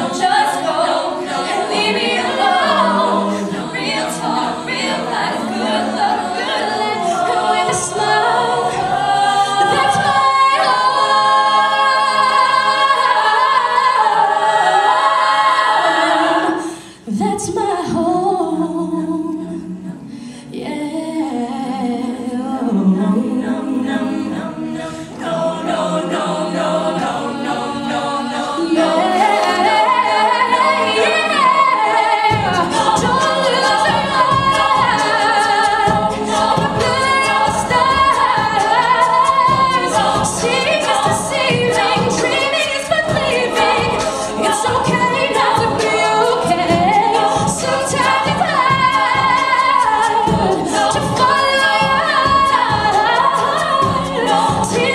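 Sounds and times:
rhythmic vocal beat: 0.0 - 16.6, 23.0 - 54.9
a cappella group singing: 0.0 - 54.9.

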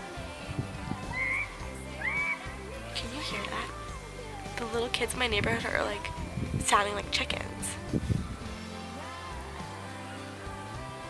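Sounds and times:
background music: 0.0 - 11.0
children squealing: 1.1 - 2.5.

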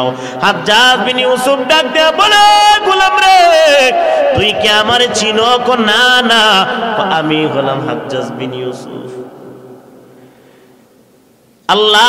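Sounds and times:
man chanting sing-song: 0.0 - 9.2.

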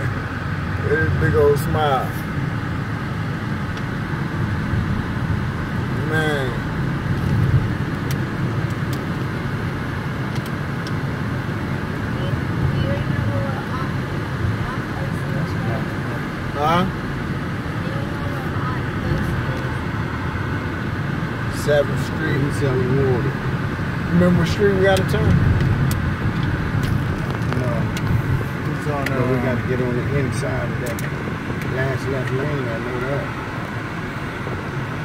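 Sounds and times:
car engine and tyre noise: 0.0 - 35.0.

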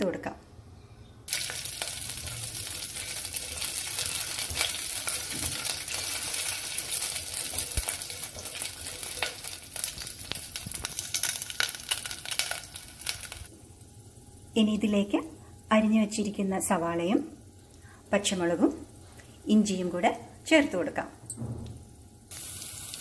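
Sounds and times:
seeds sizzling and crackling in oil: 1.3 - 18.4, 22.3 - 23.0.

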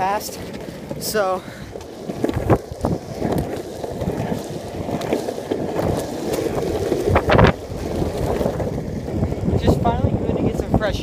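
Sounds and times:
skateboard wheels rolling on asphalt: 0.0 - 11.0
wind buffeting microphone: 0.0 - 11.0.

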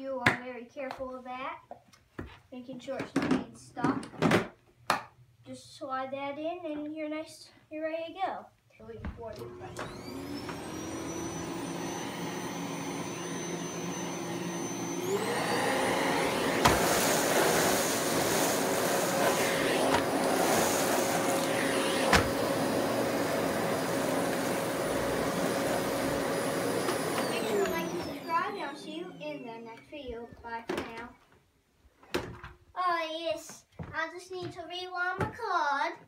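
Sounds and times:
vacuum cleaner whining: 9.1 - 31.0.

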